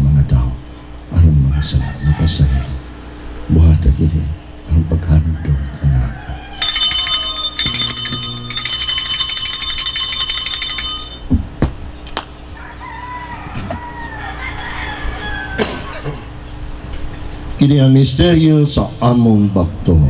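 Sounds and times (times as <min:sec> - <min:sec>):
altar bells ringing: 0:06.5 - 0:11.4.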